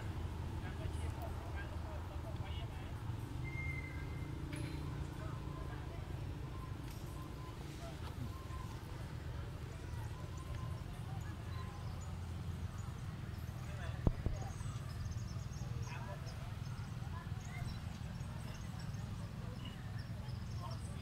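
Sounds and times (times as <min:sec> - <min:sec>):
faint chirps and squeaks: 0:03.4 - 0:09.0.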